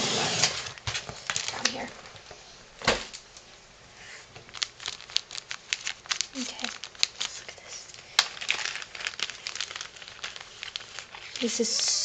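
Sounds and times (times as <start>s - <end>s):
cellophane bag crinkling: 0.4s - 2.3s, 4.3s - 12.0s.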